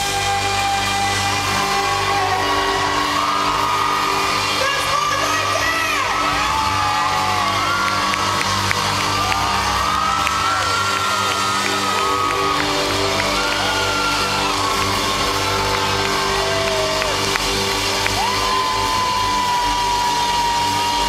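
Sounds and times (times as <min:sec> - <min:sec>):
audience whooping and cheering: 0:00.0 - 0:21.0
pop-rock band playing: 0:06.5 - 0:21.0.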